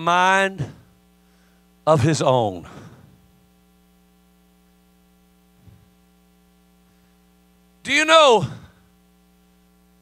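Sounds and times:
faint mains hum: 0.0 - 10.0.

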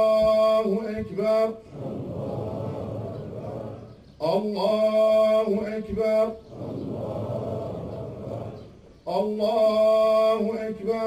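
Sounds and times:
murmur of many voices: 0.0 - 11.0.

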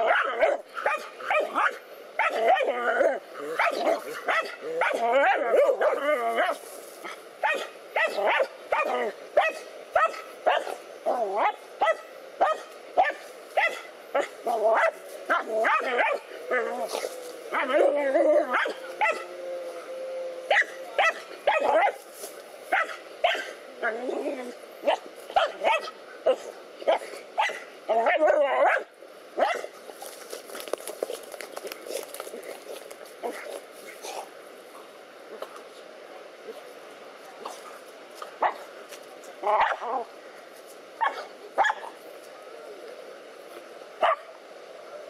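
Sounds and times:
dogs barking: 0.0 - 2.7, 3.4 - 6.6, 7.4 - 10.8, 11.4 - 17.9, 18.5 - 19.3, 20.5 - 22.0, 22.7 - 23.6, 24.8 - 29.7, 41.0 - 41.9.

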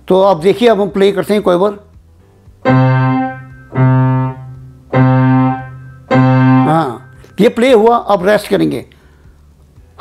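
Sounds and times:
keyboard repeating one note: 2.6 - 7.4.

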